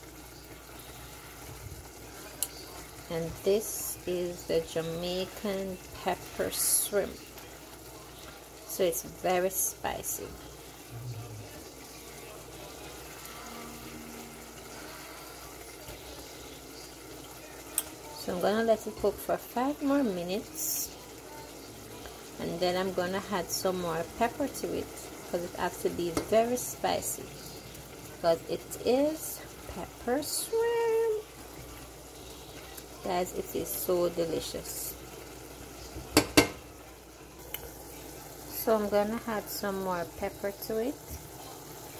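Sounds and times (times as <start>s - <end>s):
sauce bubbling in a saucepan: 0.0s - 41.9s
spatula striking metal saucepan: 36.1s - 36.6s.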